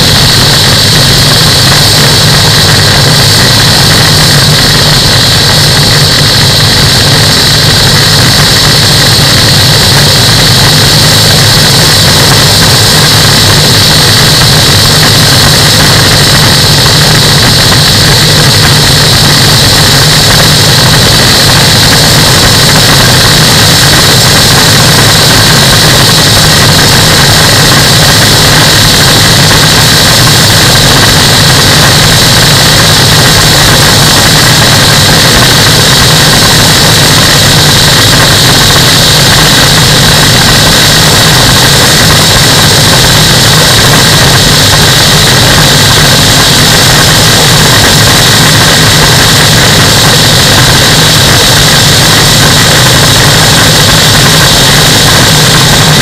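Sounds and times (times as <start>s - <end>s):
microlight engine and propeller: 0.0s - 56.0s
rushing airflow on microphone: 0.0s - 56.0s.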